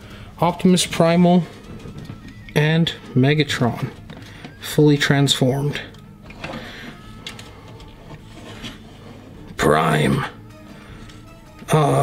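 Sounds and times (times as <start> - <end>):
plastic rubbing: 0.8 - 4.8, 5.8 - 9.7.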